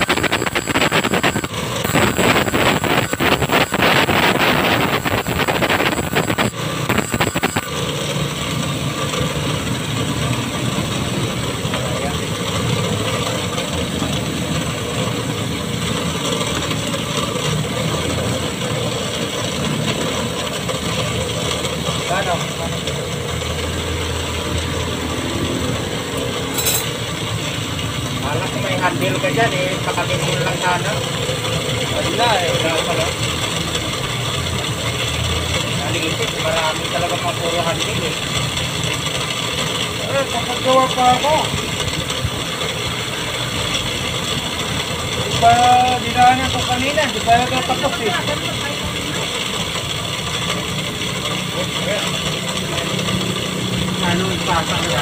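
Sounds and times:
motor running with low hum: 0:00.0 - 0:55.0.

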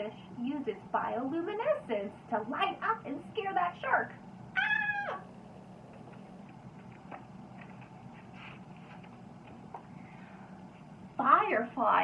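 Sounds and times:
faint low hum: 0:00.0 - 0:12.0
cat meowing: 0:04.6 - 0:05.3.

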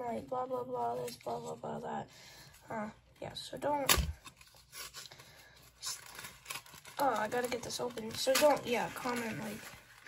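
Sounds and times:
wrapper rustling and scraping: 0:03.7 - 0:10.0.

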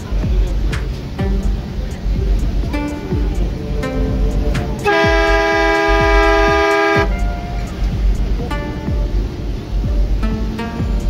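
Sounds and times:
two-tone horn blast: 0:02.8 - 0:08.3.

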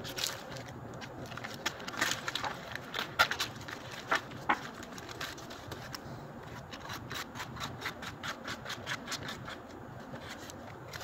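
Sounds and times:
paper bag rustling: 0:00.0 - 0:06.0
knife sawing through fruit: 0:06.6 - 0:09.7.

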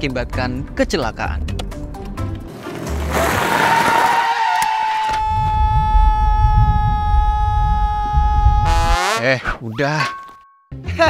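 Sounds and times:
low pulsing beat: 0:05.3 - 0:09.1.

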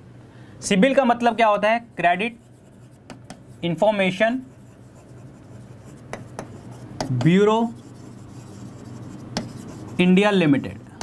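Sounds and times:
stylus scratching on touchscreen: 0:01.8 - 0:10.4
stylus tap: 0:03.0 - 0:03.5, 0:06.1 - 0:07.4, 0:09.3 - 0:09.6.

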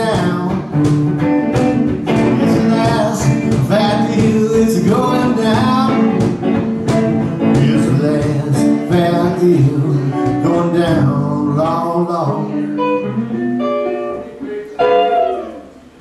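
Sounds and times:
solo blues guitar: 0:00.0 - 0:16.0.

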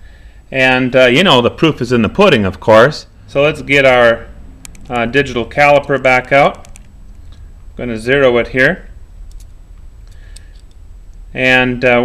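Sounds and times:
steady low hum: 0:00.0 - 0:12.0
digital caliper clicks: 0:09.2 - 0:11.2.

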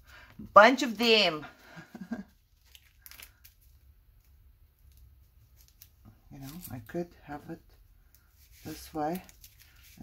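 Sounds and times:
paper rustling and crinkling: 0:02.2 - 0:07.0, 0:08.1 - 0:10.0.

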